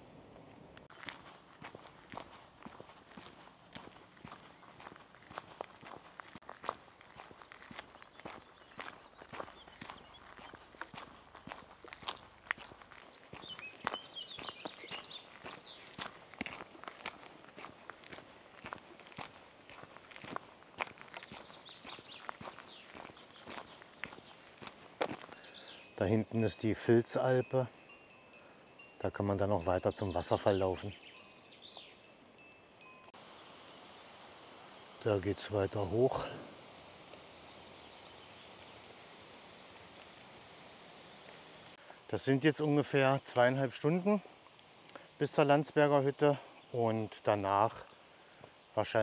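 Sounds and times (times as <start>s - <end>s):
footsteps on a trail: 0.4s - 28.6s, 29.2s - 33.0s.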